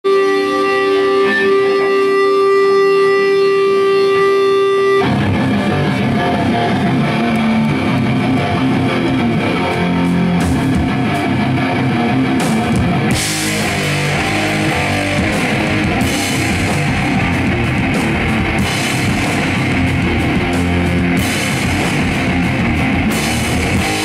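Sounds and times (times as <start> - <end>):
live rock band: 0.0 - 24.0
held electric guitar chord: 0.1 - 24.0.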